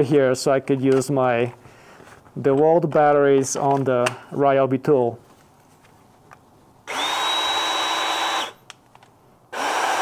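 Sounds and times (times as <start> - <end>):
cordless tool motor whine: 6.9 - 8.6, 9.5 - 10.0.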